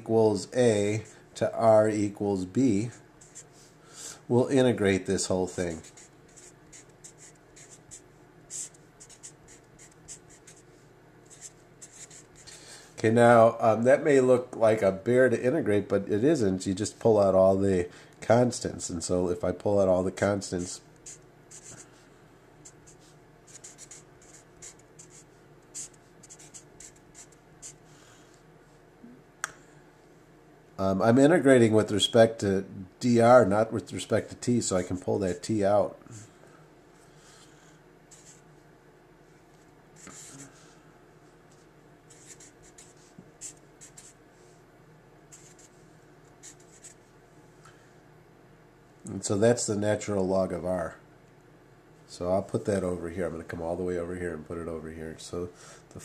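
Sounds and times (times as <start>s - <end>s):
marker scratching on paper: 3.2s - 3.5s, 5.5s - 10.7s, 11.3s - 12.6s, 21.0s - 21.8s, 22.6s - 27.8s, 38.1s - 38.4s, 40.0s - 40.5s, 41.5s - 44.2s, 45.3s - 45.8s, 46.4s - 47.1s.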